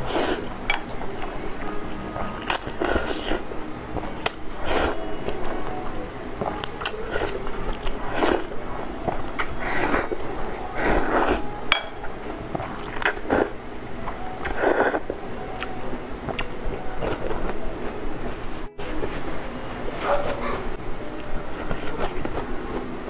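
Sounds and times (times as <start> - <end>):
chewing: 0.0 - 19.3, 19.9 - 22.8.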